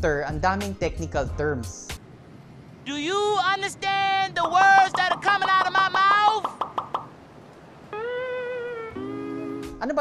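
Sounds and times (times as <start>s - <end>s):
man shouting: 2.9s - 6.6s
sustained musical note: 8.9s - 9.8s.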